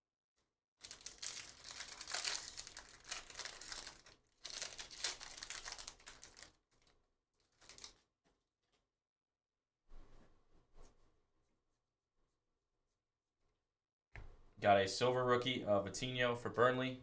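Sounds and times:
foil wrapper crinkling: 0.8 - 8.0.

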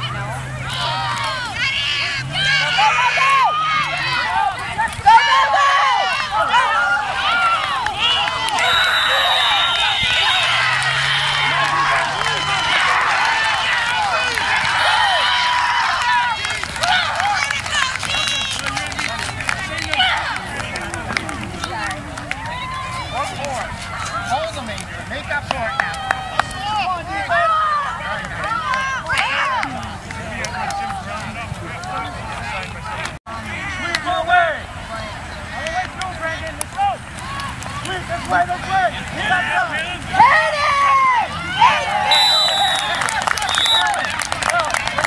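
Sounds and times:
people shouting and calling out: 0.0 - 45.0.

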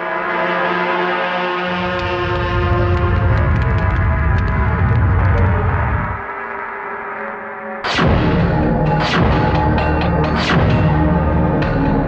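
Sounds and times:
deep low rumble: 1.8 - 6.2.

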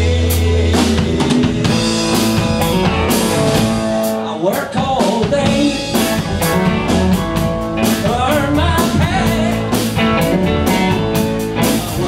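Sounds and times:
bass guitar: 0.0 - 12.0
drum kit hits: 0.0 - 12.0
electric guitars: 0.0 - 12.0.

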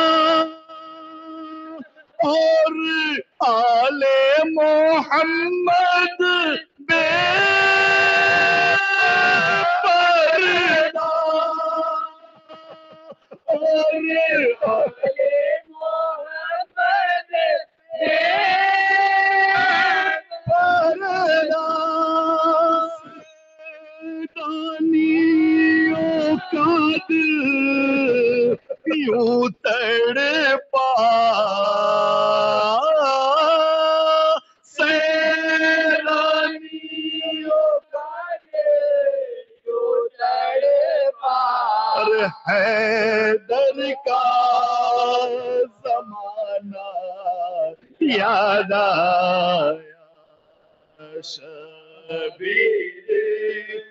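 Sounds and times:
man chanting a lament: 0.0 - 50.4, 51.0 - 53.9
person singing a long note: 6.8 - 15.8, 18.0 - 28.8.

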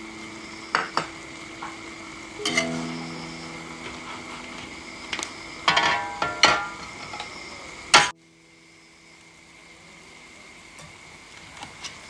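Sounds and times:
food sizzling in a wok: 0.0 - 12.0.

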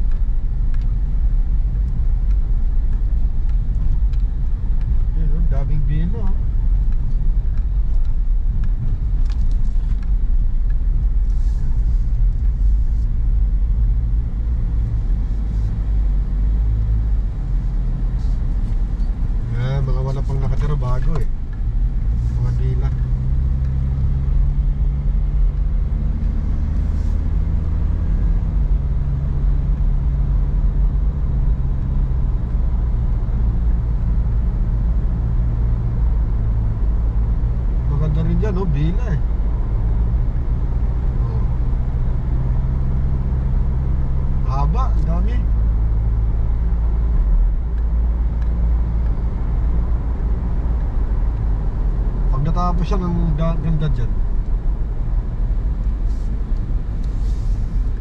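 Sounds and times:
car engine and tyre rumble: 0.0 - 58.0.

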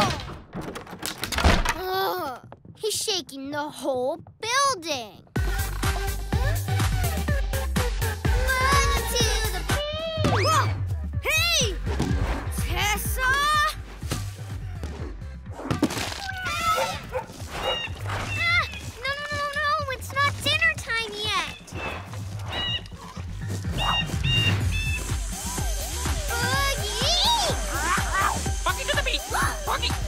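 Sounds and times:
music with bass beat: 5.4 - 13.1, 23.2 - 30.0
animal-like calls: 21.6 - 26.5.

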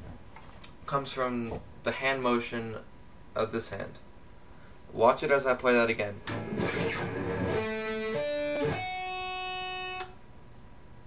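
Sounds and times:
clean electric guitar notes: 6.3 - 10.1.

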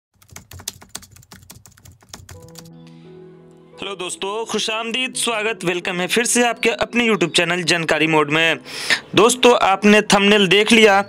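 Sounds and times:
rapid clicks: 0.2 - 2.7
held musical chord: 2.4 - 9.5.

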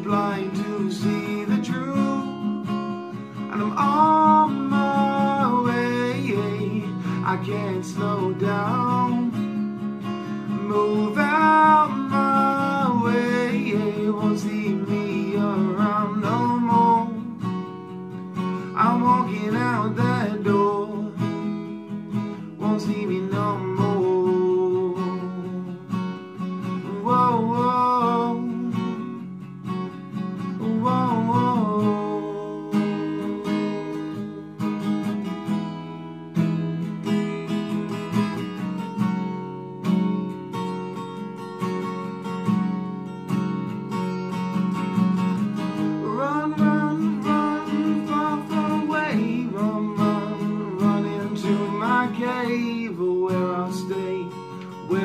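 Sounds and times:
man singing wordless phrases: 0.0 - 2.8, 3.4 - 9.5, 10.5 - 17.4, 18.6 - 21.7, 22.4 - 25.9, 26.7 - 29.3, 30.5 - 34.6, 46.0 - 55.0
acoustic guitar strumming: 0.0 - 55.0.

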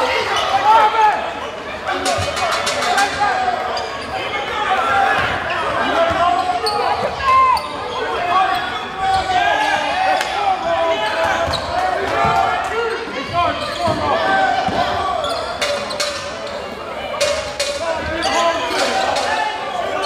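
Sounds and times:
voices in a gym: 0.0 - 20.0.

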